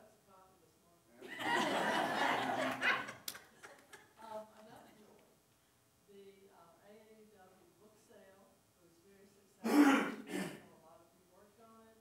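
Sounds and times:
person clearing throat: 9.6s - 10.7s.

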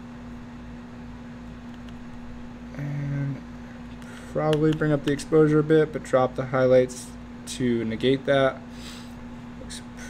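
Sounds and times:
faint hiss and rumble: 0.0s - 10.0s.

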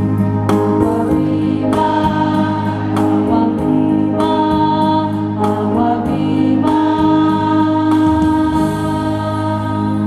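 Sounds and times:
choir singing a hymn: 0.7s - 10.0s.

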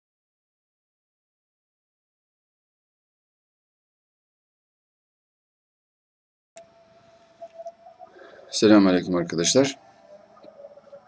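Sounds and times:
high whine: 6.6s - 11.0s.

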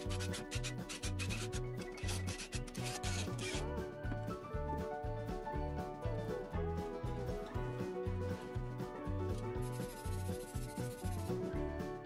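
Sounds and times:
background music with bass beat: 0.0s - 12.0s.

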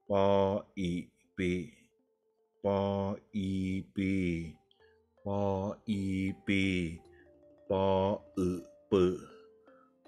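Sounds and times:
man speaking syllables: 0.0s - 1.8s, 2.6s - 4.6s, 5.3s - 7.0s, 7.7s - 9.3s
soft background music: 0.0s - 10.0s.

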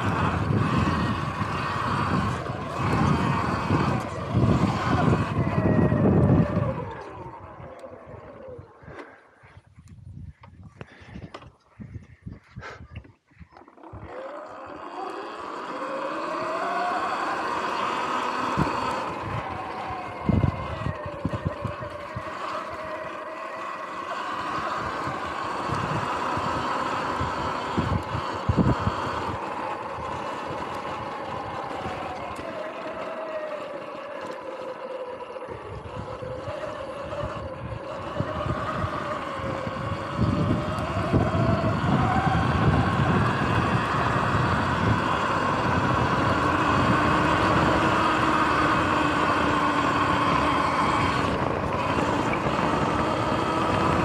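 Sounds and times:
electric motor whine: 0.0s - 9.3s, 13.6s - 54.0s
tyres and suspension rumbling: 0.0s - 54.0s.

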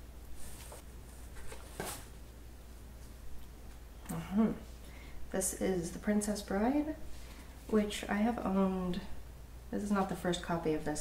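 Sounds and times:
book rustling against cardboard: 0.4s - 2.2s.

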